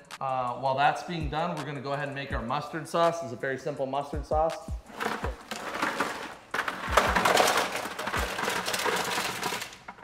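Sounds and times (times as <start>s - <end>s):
crab claws clattering into a pot: 5.0s - 10.0s.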